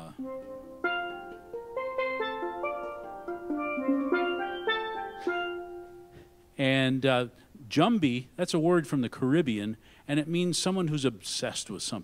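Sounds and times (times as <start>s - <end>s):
steel pan melody: 0.0s - 6.6s.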